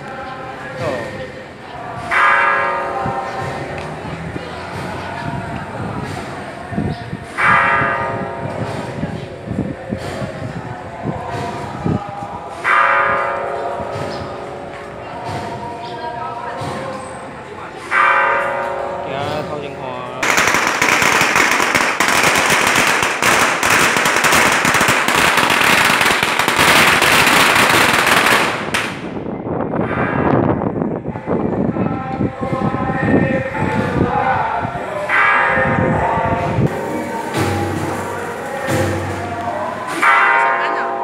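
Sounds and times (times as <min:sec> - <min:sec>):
firecrackers crackling: 0:20.2 - 0:29.3.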